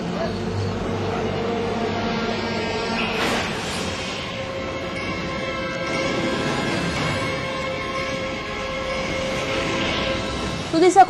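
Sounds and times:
eerie soundtrack drone: 0.0s - 11.0s.

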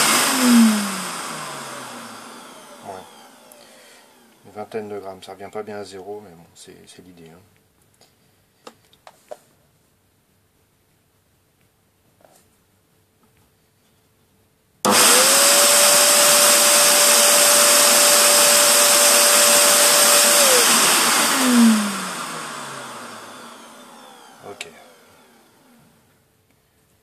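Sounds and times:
electric air blower running: 0.0s - 4.4s, 14.9s - 26.0s.

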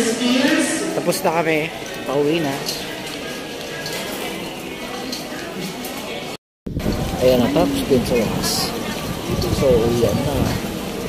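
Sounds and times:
background noise: 0.0s - 11.0s
indistinct chatter of shoppers: 0.0s - 11.0s.

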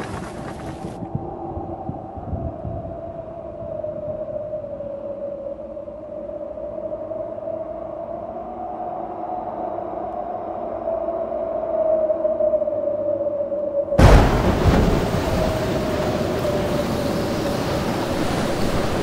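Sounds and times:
low rumble: 14.0s - 19.0s.

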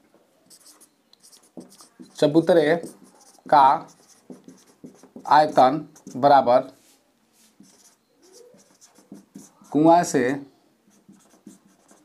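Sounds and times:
marker pen writing on whiteboard: 0.5s - 6.4s, 7.6s - 10.1s, 10.9s - 12.0s.

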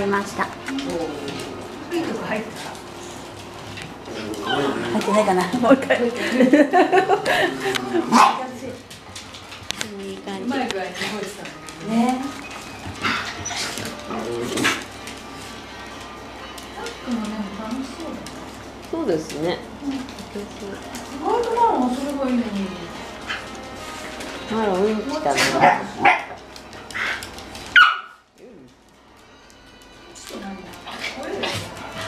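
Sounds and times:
dogs barking and yipping: 8.0s - 8.6s, 12.3s - 15.0s, 23.2s - 28.3s
small dog barking: 27.7s - 28.2s.

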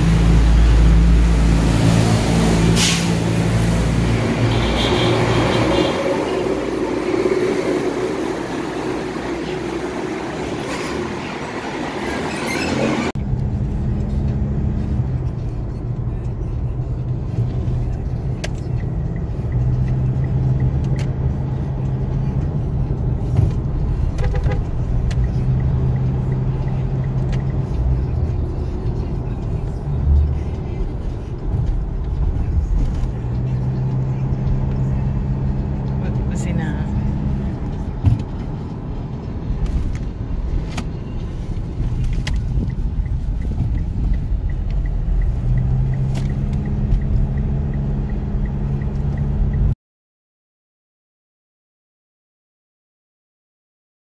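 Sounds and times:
car engine and road noise: 0.0s - 49.8s.

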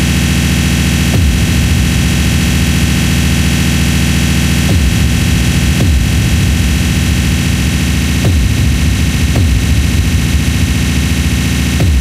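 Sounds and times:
distorted hissing synthesizer noise: 0.0s - 12.0s
low drone: 0.9s - 12.0s.

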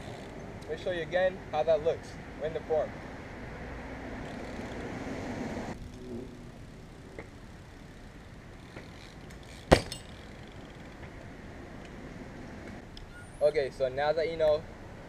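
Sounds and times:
bike tyres rolling on concrete: 5.7s - 12.0s
bike landing on concrete: 8.7s - 10.4s.

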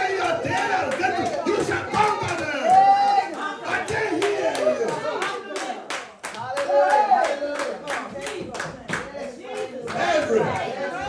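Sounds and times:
congregation clapping rhythmically: 0.0s - 11.0s
raised voices: 9.1s - 11.0s.

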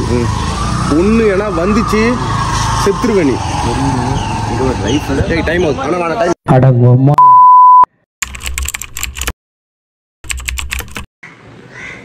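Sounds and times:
man talking: 4.6s - 7.2s
censor bleep: 7.1s - 7.9s
rapid keyboard typing clicks: 8.2s - 9.3s, 10.2s - 11.1s.

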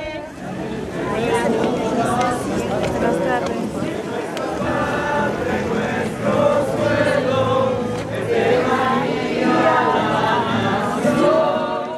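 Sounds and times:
group singing a hymn: 0.0s - 11.9s.

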